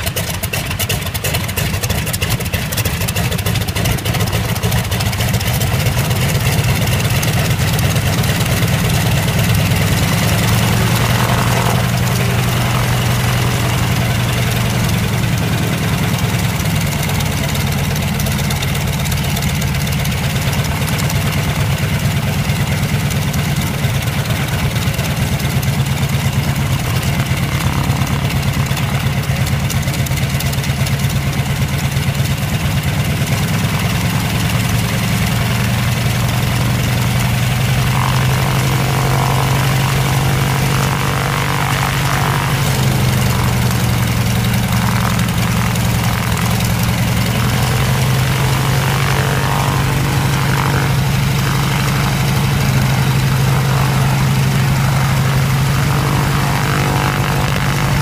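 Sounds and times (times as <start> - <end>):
radial engine idling: 0.0 - 58.0.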